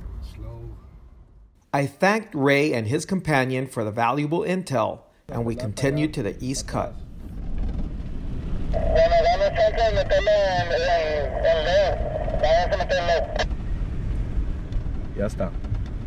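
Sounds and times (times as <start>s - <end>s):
vehicle rumble on sand: 7.0s - 16.0s.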